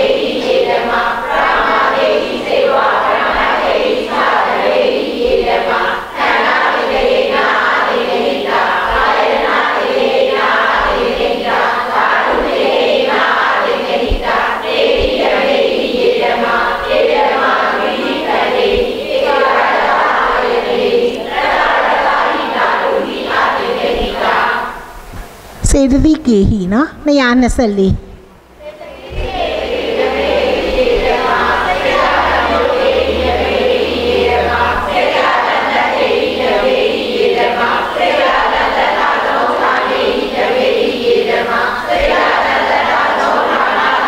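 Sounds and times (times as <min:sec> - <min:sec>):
voices chanting together: 0:00.0 - 0:25.5, 0:28.2 - 0:44.0
group reciting in unison: 0:00.0 - 0:25.7, 0:28.1 - 0:44.0.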